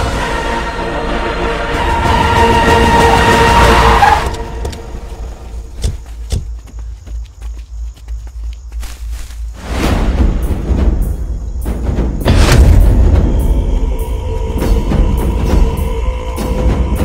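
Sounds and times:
choral music: 0.0 - 5.7, 9.6 - 17.0.

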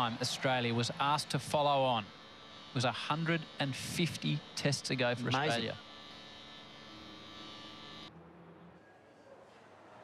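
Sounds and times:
buzzy electrical hum: 0.0 - 8.8.

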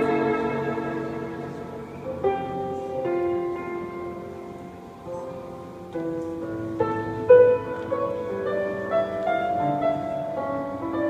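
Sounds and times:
bowed strings: 0.0 - 4.2
piano chord: 0.0 - 11.0.

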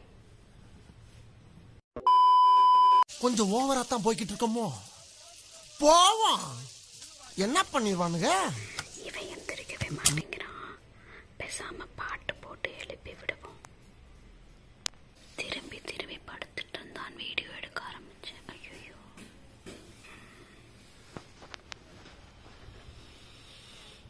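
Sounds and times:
person whispering close to microphone: 8.8 - 10.8, 11.4 - 13.6, 15.3 - 19.2.

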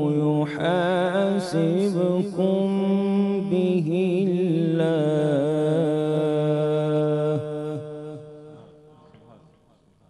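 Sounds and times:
man chanting melodically: 0.0 - 9.6.

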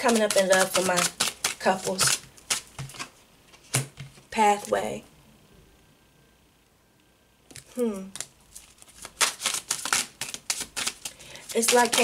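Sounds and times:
cards snapping and tapping: 0.0 - 3.1, 3.7 - 4.2, 9.0 - 12.0.

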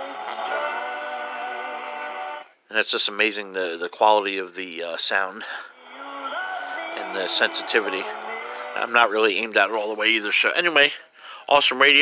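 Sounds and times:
held chord on am radio: 5.8 - 9.6.

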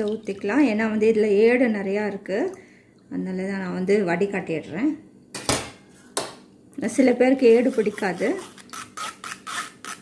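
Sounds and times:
metal spoon scraping mesh strainer: 7.4 - 10.0.

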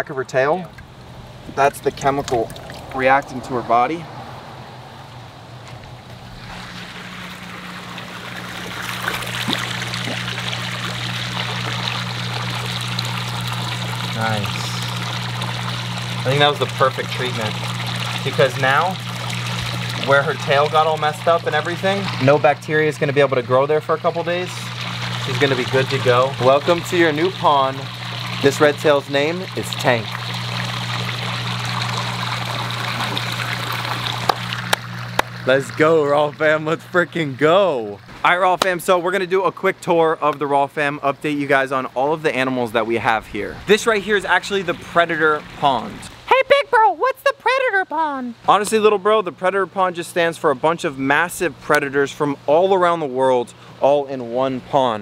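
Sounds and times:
steady low hum: 0.0 - 46.3
water trickling: 0.1 - 53.9.

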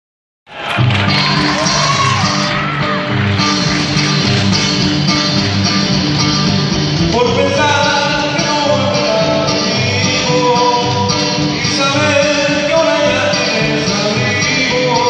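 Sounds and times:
acoustic guitar: 0.5 - 15.0
steady bass beat: 0.7 - 8.0
person singing: 7.0 - 15.0.

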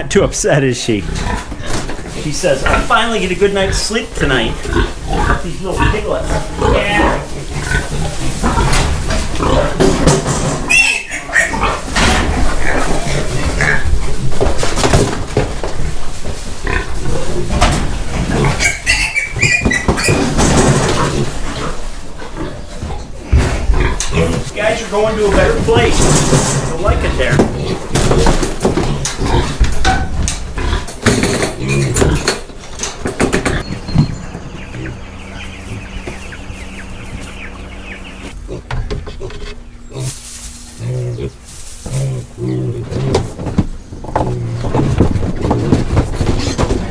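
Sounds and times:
piglets grunting and squealing: 1.0 - 14.4, 16.6 - 32.4, 34.5 - 43.4
knocks and clatter against crate: 8.5 - 10.8, 14.2 - 16.4, 19.4 - 21.3, 25.4 - 34.5, 42.9 - 46.9
low pig call: 10.6 - 14.0
steady low hum: 20.3 - 46.9.

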